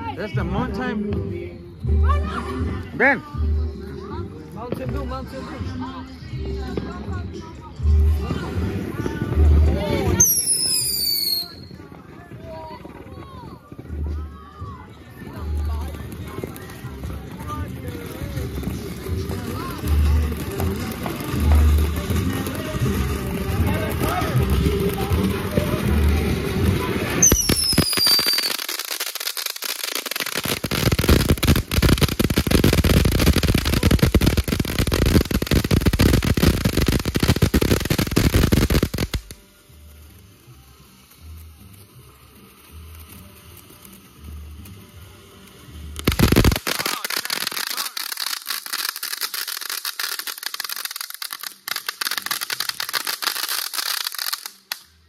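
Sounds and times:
fireworks crackling: 0.0s - 55.0s
firework whistles falling in pitch: 10.2s - 11.8s, 27.2s - 28.7s.

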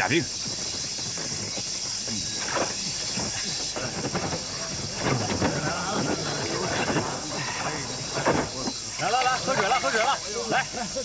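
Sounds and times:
insect chorus droning: 0.0s - 11.0s.

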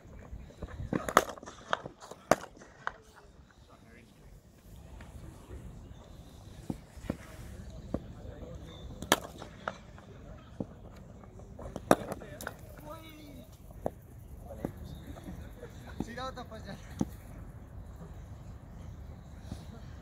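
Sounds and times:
cricket bat striking ball: 9.0s - 9.8s.

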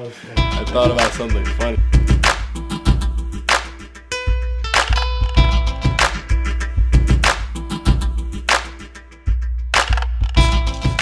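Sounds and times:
hip hop beat with bass: 0.4s - 11.0s.

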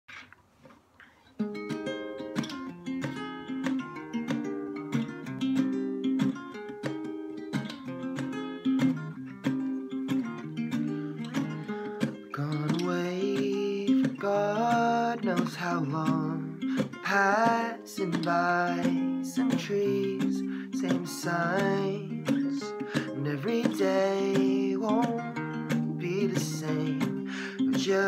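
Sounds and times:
acoustic guitar chords: 1.4s - 28.0s
man singing: 12.3s - 28.0s.

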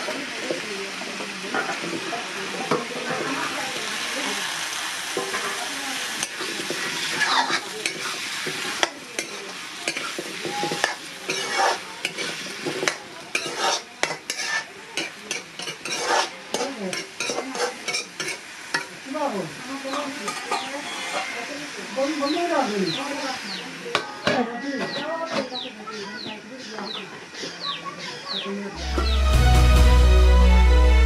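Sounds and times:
potatoes and onions sizzling in oil: 0.0s - 31.0s
metal spatula scraping a pan: 0.4s - 3.7s, 5.2s - 19.0s, 19.8s - 22.2s.

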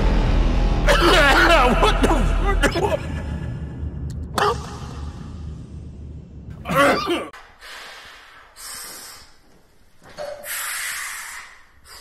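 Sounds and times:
man coughing hoarsely: 0.9s - 3.4s, 6.6s - 7.4s.

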